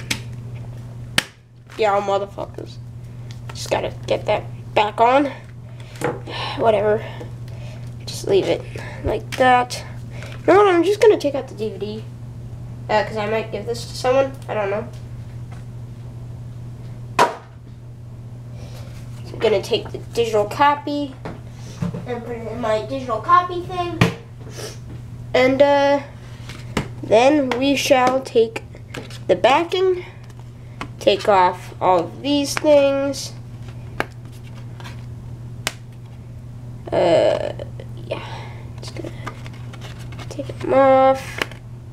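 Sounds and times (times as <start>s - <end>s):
steady low hum: 0.0s - 41.9s.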